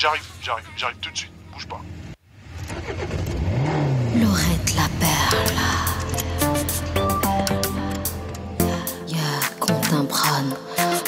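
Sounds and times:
car engine revving: 1.6s - 8.5s.

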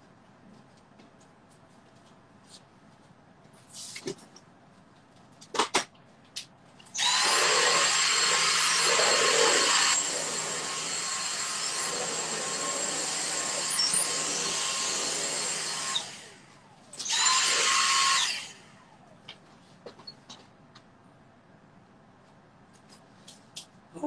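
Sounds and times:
vacuum cleaner motor whine: 7.0s - 19.0s.

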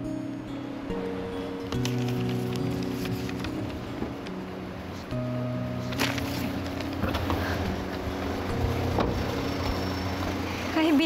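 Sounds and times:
soft background music: 0.0s - 11.0s
car engine running: 5.2s - 11.0s.

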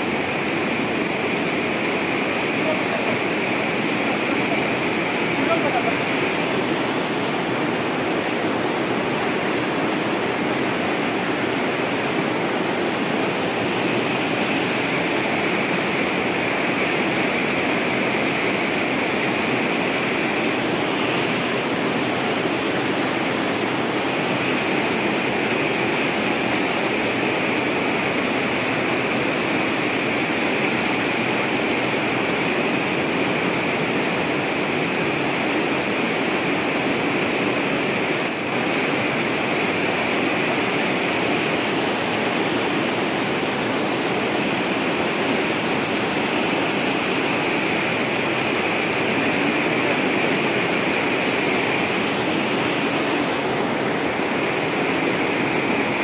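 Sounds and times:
water gushing from pipe: 0.0s - 56.0s.

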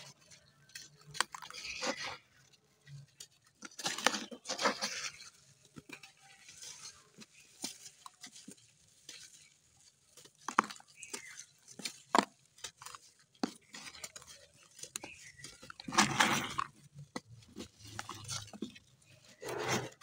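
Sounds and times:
dry clay clods crumbling: 0.0s - 20.0s.

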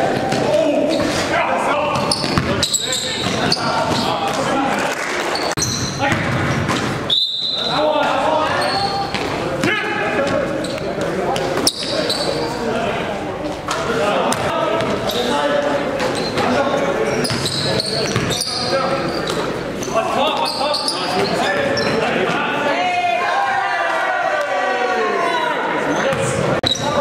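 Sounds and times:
basketball bouncing on gym floor: 1.9s - 4.4s
players shouting: 22.1s - 27.0s.

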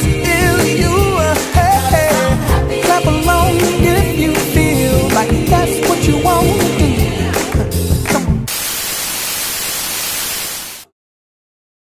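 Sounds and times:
pop music: 0.0s - 8.5s
steady static hiss: 8.5s - 10.8s.

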